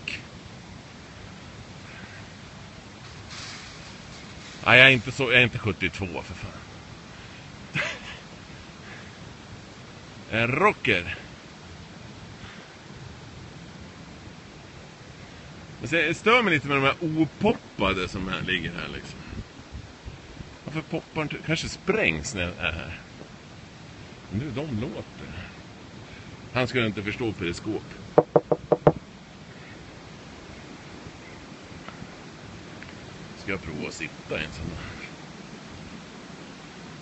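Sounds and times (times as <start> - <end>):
outdoor background hiss: 0.0 - 37.0
knuckles knocking on a sculpture: 28.2 - 29.0.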